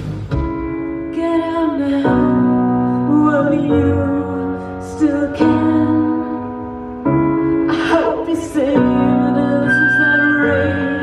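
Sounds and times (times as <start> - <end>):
rock band playing live: 0.0 - 2.0
electric guitar chords: 0.0 - 11.0.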